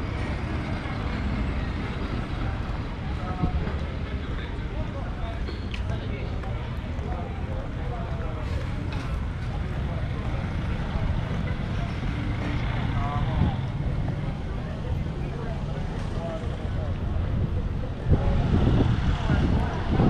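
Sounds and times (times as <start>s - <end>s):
faint voices: 0.0s - 20.0s
wind buffeting microphone: 17.0s - 20.0s.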